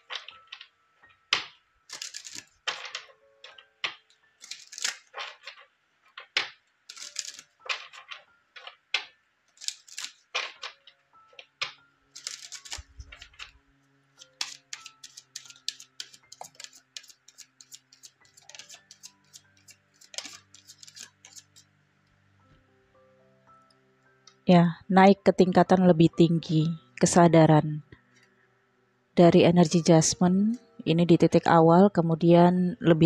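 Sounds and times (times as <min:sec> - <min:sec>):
faint background music: 0:00.0 - 0:33.0
cards being shuffled: 0:01.4 - 0:10.9, 0:11.6 - 0:13.6, 0:14.2 - 0:21.6.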